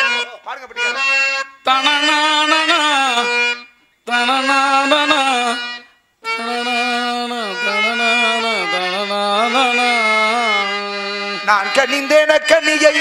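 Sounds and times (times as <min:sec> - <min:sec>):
harmonium: 0:00.0 - 0:13.0
man singing: 0:00.8 - 0:13.0.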